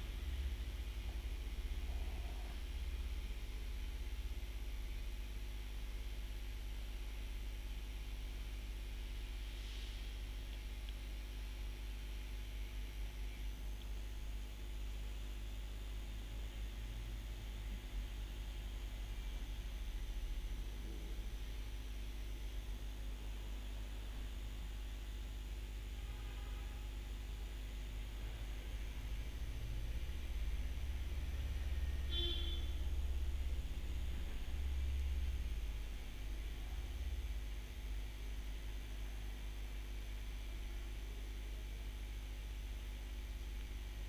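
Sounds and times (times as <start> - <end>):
low electrical hum: 0.0 - 44.0
faint hiss: 9.3 - 10.6.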